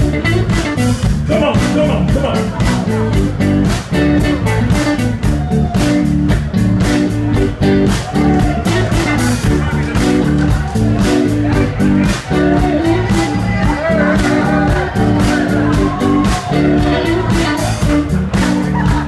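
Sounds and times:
bass guitar: 0.0s - 19.0s
electric guitar: 0.0s - 19.0s
steady drum beat: 0.0s - 19.0s.

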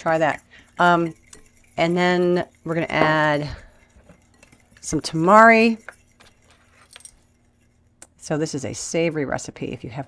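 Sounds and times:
metal spoon clinking on glass bowl: 0.0s - 7.4s.

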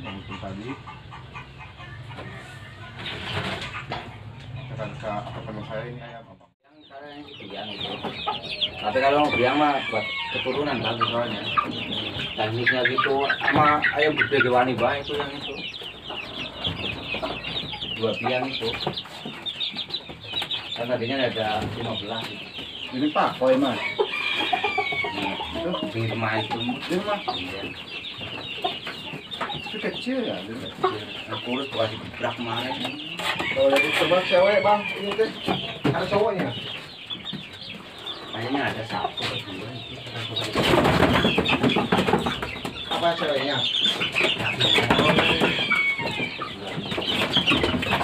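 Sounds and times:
chicks peeping: 0.0s - 48.0s.

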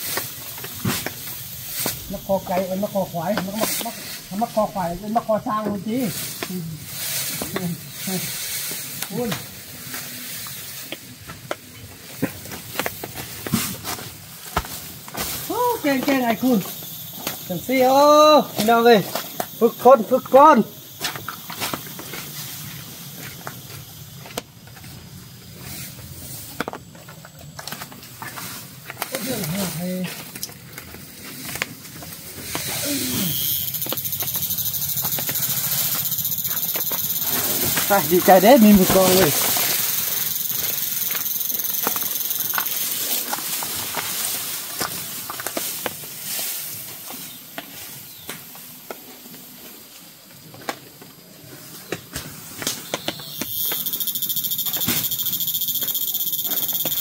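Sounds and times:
footsteps on dry leaves and twigs: 0.0s - 20.2s, 20.8s - 57.0s.

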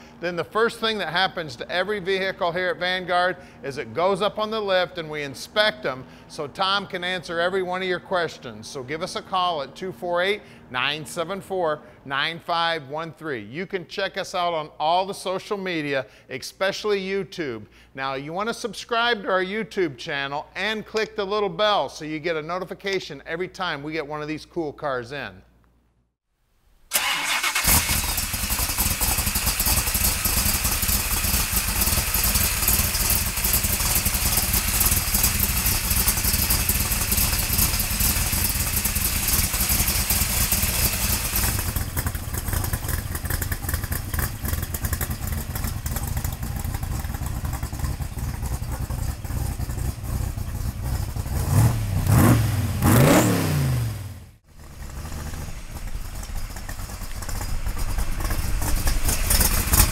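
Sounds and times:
car engine running and revving: 28.6s - 59.9s.

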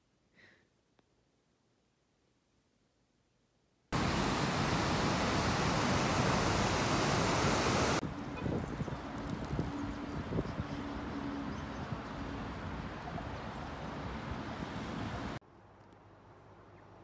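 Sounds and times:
water rushing over a weir: 4.0s - 8.0s
distant traffic hum: 4.0s - 17.0s.

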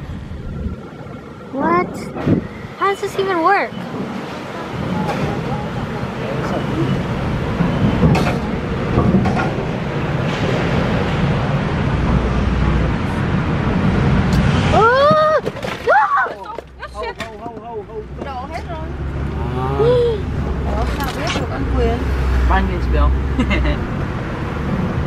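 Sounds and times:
road and engine rumble: 0.0s - 25.0s.

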